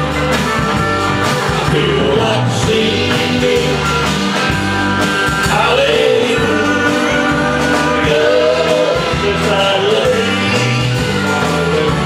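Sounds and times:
drums: 0.0s - 12.0s
live country band: 0.0s - 12.0s
pedal steel guitar: 0.0s - 12.0s.

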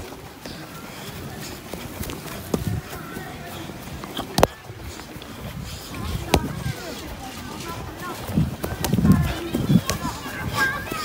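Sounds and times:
bare feet running on grass: 0.0s - 11.0s.

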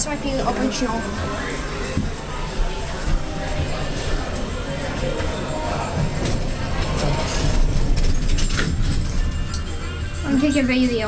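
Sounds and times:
background music: 0.0s - 11.0s
indistinct voices: 0.0s - 11.0s.

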